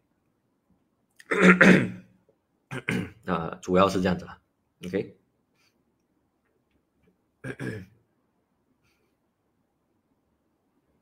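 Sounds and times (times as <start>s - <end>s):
man clearing his throat: 1.2s - 2.1s, 2.7s - 3.2s, 7.4s - 8.0s
man speaking: 2.8s - 5.2s, 7.5s - 7.9s.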